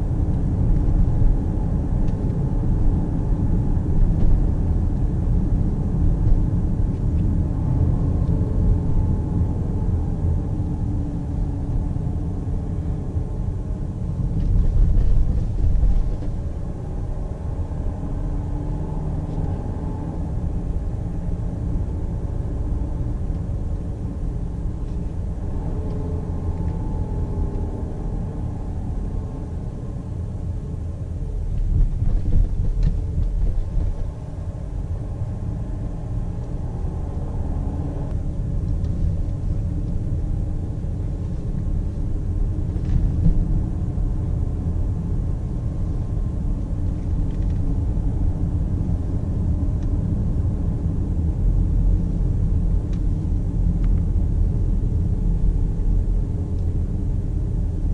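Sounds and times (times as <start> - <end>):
car engine and tyre rumble: 0.0 - 57.9.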